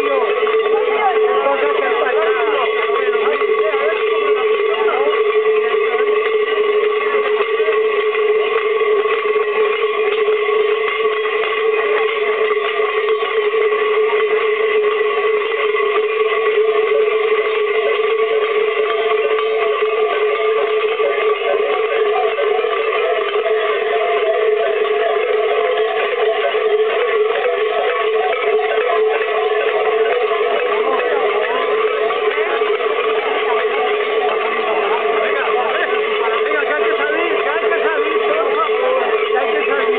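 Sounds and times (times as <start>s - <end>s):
large cowbells clanging: 0.0s - 39.9s.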